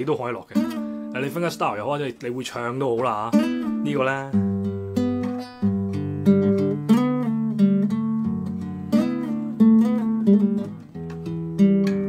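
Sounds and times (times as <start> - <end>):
classical guitar fingerstyle: 0.0 - 12.0.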